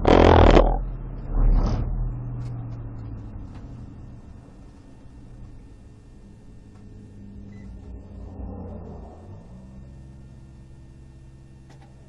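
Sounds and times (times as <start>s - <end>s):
road noise: 0.0s - 5.4s.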